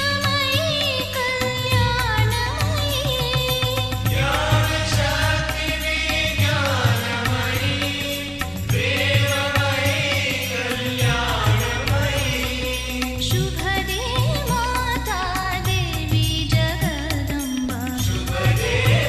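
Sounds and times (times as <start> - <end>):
devotional singing: 0.0 - 19.0
steady drum beat: 0.0 - 19.0.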